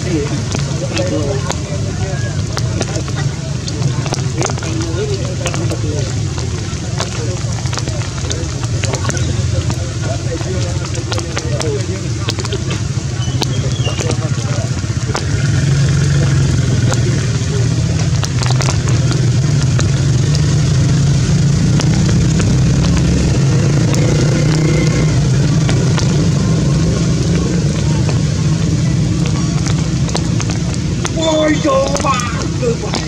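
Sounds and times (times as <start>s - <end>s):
faint voices: 0.0s - 33.0s
low engine-like rumble: 0.0s - 33.0s.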